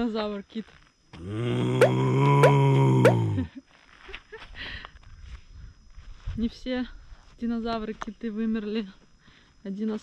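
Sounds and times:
man growling like a dinosaur: 0:01.2 - 0:03.5.

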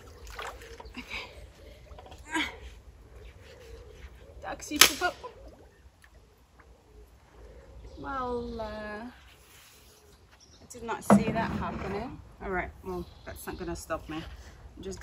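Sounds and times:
water splashing and sloshing: 0:00.0 - 0:04.2, 0:11.0 - 0:12.4
digging tool striking silt underwater: 0:11.1 - 0:12.0.

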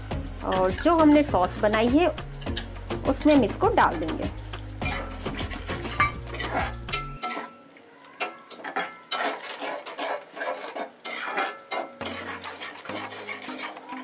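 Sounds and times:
spoon scraping metal pot: 0:00.4 - 0:07.6, 0:08.2 - 0:14.0.

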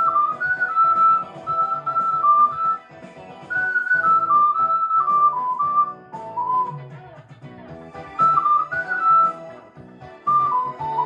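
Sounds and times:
karaoke backing track: 0:00.0 - 0:11.0
ocarina playing a melody: 0:03.5 - 0:06.7, 0:08.2 - 0:09.4, 0:10.3 - 0:11.0.

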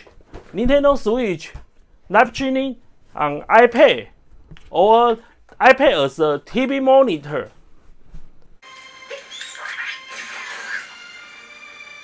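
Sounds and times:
video game music: 0:08.6 - 0:12.0.

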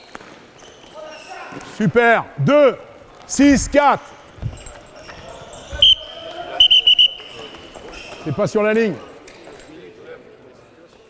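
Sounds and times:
faint voices of players talking: 0:00.8 - 0:11.0.

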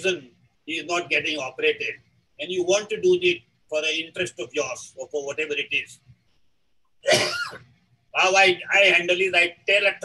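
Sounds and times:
man coughing: 0:07.0 - 0:07.6.

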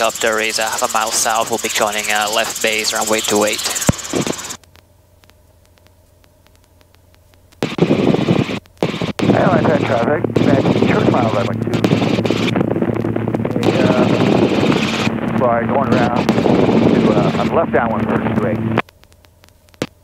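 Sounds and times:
garbled radio voice: 0:00.0 - 0:04.6, 0:08.9 - 0:12.5, 0:13.4 - 0:18.8
steady low hum: 0:00.0 - 0:20.0
faint regular clicks: 0:00.2 - 0:09.3, 0:18.7 - 0:20.0.

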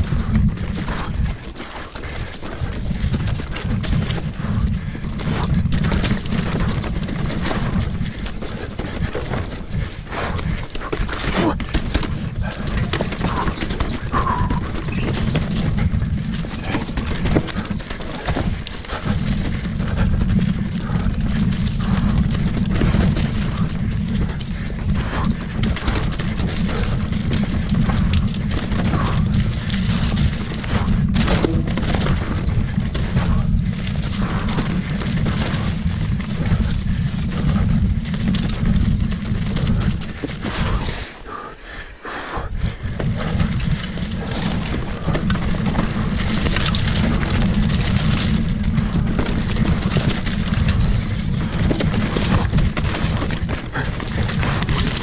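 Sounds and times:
clicks and knocks from bike: 0:00.0 - 0:41.4, 0:42.1 - 0:55.0
bike rattling over rocks: 0:00.0 - 0:55.0
wind rumble on microphone: 0:00.0 - 0:55.0.

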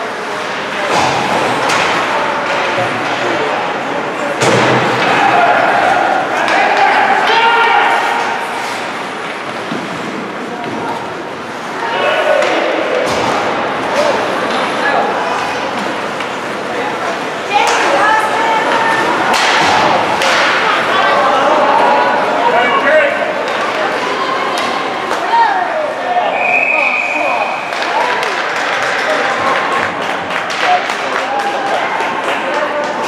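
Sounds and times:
players and spectators shouting: 0:03.4 - 0:09.2, 0:11.6 - 0:28.4
hockey sticks and puck knocking: 0:06.4 - 0:07.0, 0:18.6 - 0:20.7
short high whistle: 0:26.3 - 0:27.5.

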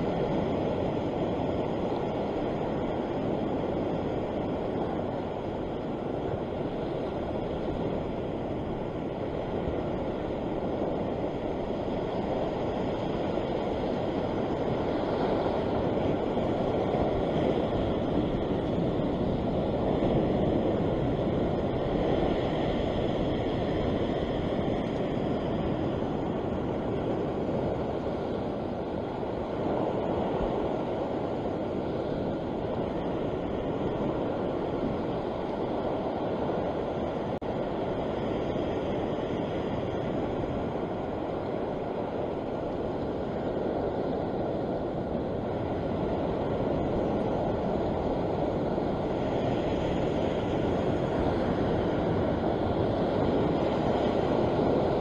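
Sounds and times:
ocean surf washing over rocks: 0:00.0 - 0:55.0.

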